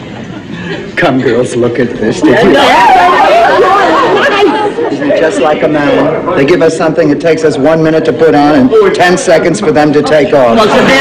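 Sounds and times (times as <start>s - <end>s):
women chattering excitedly: 2.2s - 6.2s.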